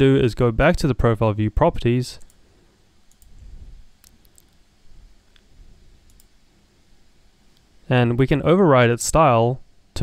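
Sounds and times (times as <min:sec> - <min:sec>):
computer mouse clicks: 0:03.1 - 0:03.4, 0:05.3 - 0:06.3.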